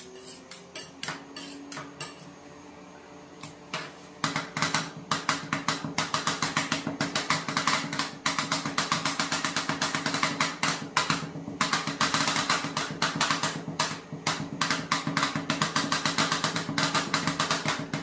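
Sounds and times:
metal spatulas tapping on steel: 0:00.2 - 0:02.3.

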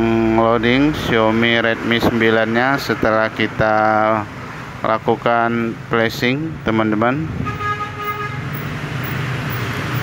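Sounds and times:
vehicle rumble and hiss: 0:00.0 - 0:10.0
horn-like tone: 0:07.4 - 0:08.4.

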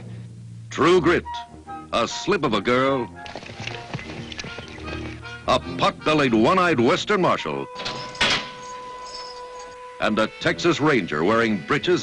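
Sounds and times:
background music: 0:00.0 - 0:12.0
horse hooves clip-clopping: 0:03.2 - 0:05.4.

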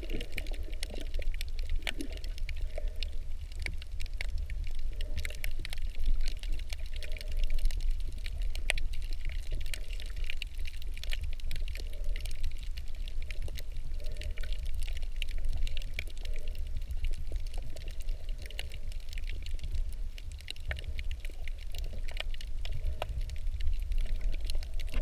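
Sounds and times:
crackle of sharp clicks: 0:00.0 - 0:25.0
underwater low rumble: 0:00.0 - 0:25.0.

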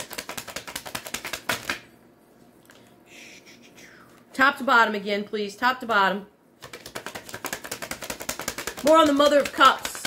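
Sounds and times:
cards being shuffled: 0:00.0 - 0:01.8, 0:06.6 - 0:10.0.

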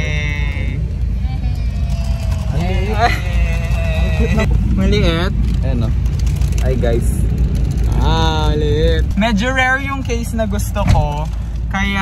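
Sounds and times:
car engine and road noise: 0:00.0 - 0:12.0
passengers talking: 0:00.0 - 0:12.0.

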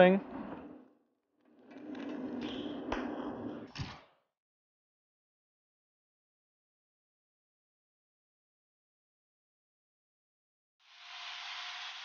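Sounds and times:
welding arc hissing buzz: 0:10.8 - 0:12.0.

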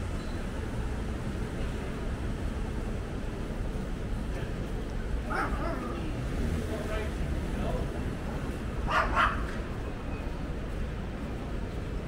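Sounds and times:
low city rumble: 0:00.0 - 0:12.0
small dog yipping and barking: 0:05.3 - 0:06.0, 0:08.9 - 0:09.5.

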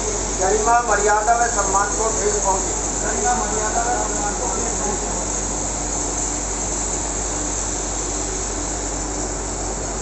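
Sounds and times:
even hiss: 0:00.0 - 0:10.0.

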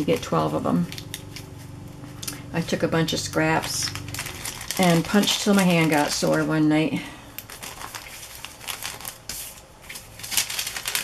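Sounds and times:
plastic bags crinkling: 0:00.0 - 0:01.5, 0:03.4 - 0:11.0.

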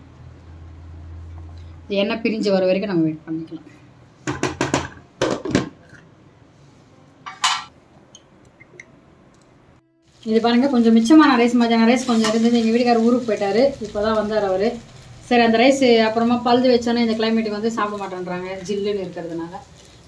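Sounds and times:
wooden spatula knocking on pan: 0:04.3 - 0:05.7.

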